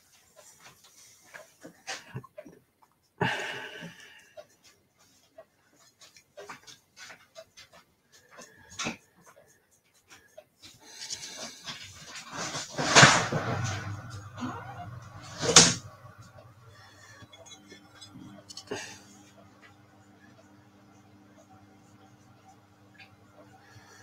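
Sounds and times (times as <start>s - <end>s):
washing machine humming: 7.7s - 24.0s.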